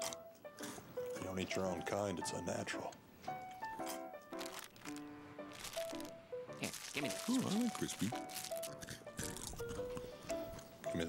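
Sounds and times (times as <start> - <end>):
slow held-note music: 0.0 - 11.0.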